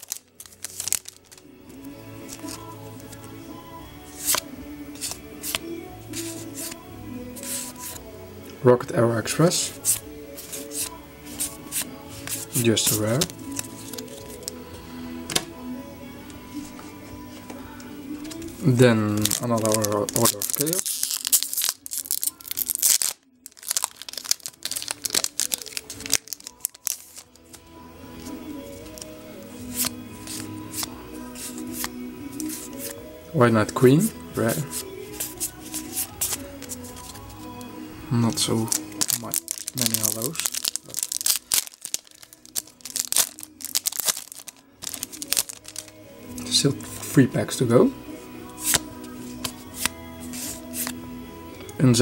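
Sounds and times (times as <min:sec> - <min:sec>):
foil wrapper crinkling and tearing: 0:00.0 - 0:01.5, 0:19.1 - 0:27.5, 0:38.3 - 0:46.0.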